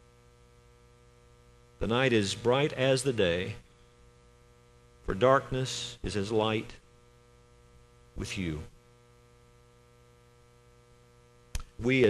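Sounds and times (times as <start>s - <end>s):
faint electrical hum: 0.0s - 12.0s
man speaking: 1.8s - 3.6s, 5.1s - 6.8s, 8.2s - 8.7s, 11.8s - 12.0s.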